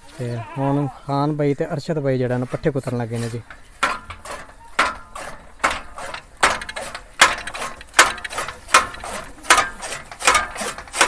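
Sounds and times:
chaff cutter blades chopping: 0:02.4 - 0:11.0
mechanism clattering: 0:03.4 - 0:11.0.

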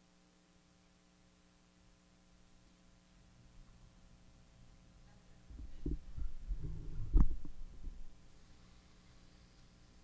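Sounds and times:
microphone handling thumps: 0:05.6 - 0:08.1.

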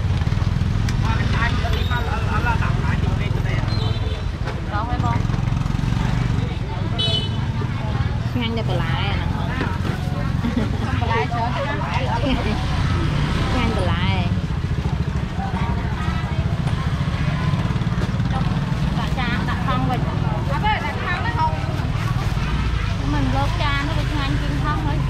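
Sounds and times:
people chattering: 0:00.0 - 0:25.0.

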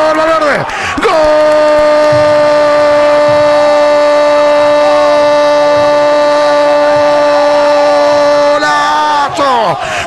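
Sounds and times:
commentator shouting goal cry: 0:00.0 - 0:10.0.

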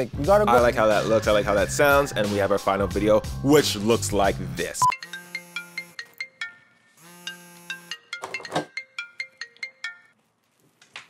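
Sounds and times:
phone ringtone melody: 0:04.8 - 0:10.2.

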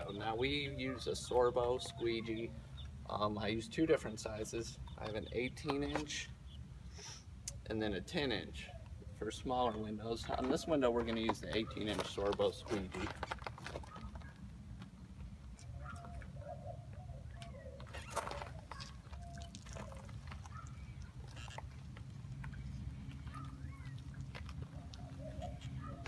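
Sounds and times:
squeegee squeaking on wet glass: 0:17.9 - 0:21.8.

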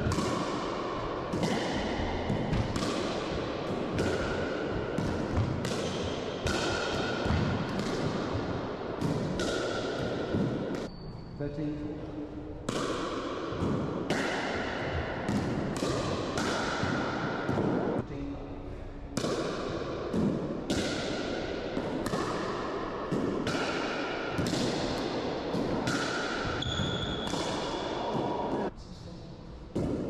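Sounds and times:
ball bouncing: 0:00.0 - 0:00.7, 0:01.3 - 0:11.0, 0:12.6 - 0:18.0, 0:19.1 - 0:28.7, 0:29.7 - 0:30.0.

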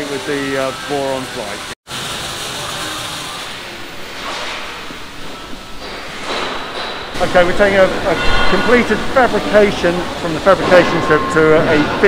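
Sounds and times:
factory workshop hiss and hum: 0:00.0 - 0:12.0.

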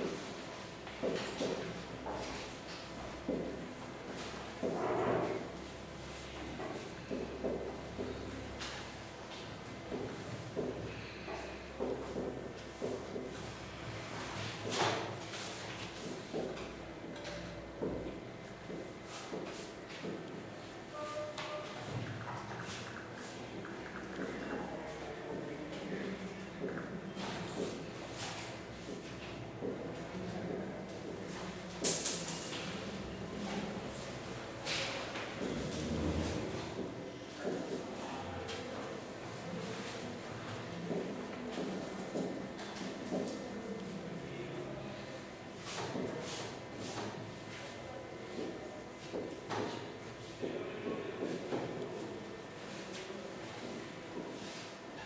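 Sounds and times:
marker writing on a whiteboard: 0:11.8 - 0:13.5.

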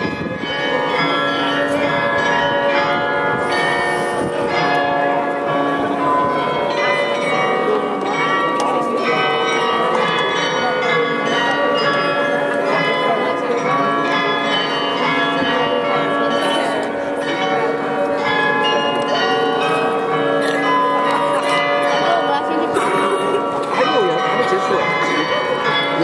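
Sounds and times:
tuned bells playing a tune: 0:00.0 - 0:26.0.

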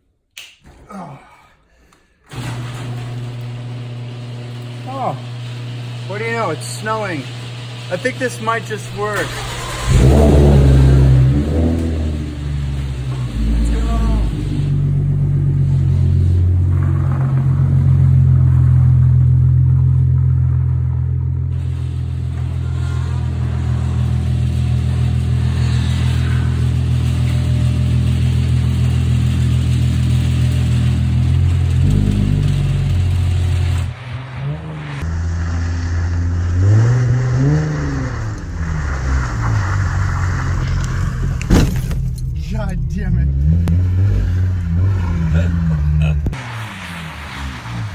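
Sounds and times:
car engine revving: 0:02.4 - 0:47.9.

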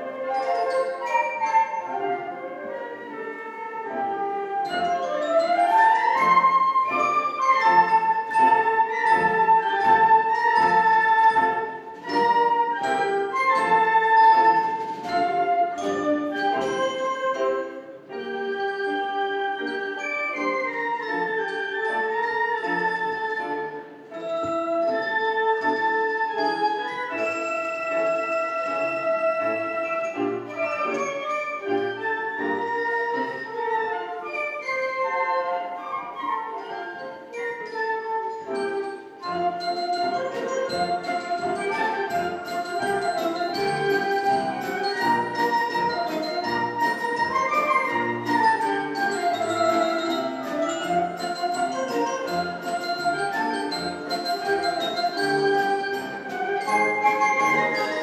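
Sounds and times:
flute ensemble playing: 0:00.0 - 0:58.0.

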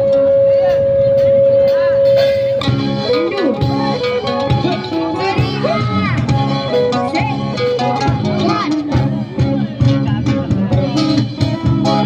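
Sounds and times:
acoustic guitar band playing: 0:00.0 - 0:12.0.

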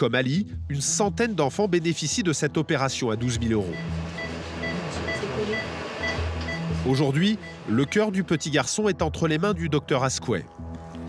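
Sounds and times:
patient monitor pulse beeps: 0:03.6 - 0:08.8.

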